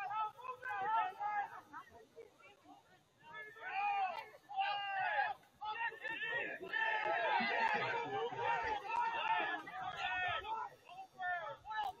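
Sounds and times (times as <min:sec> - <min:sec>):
people shouting and calling out: 0:00.0 - 0:12.0
babble of voices: 0:02.5 - 0:12.0.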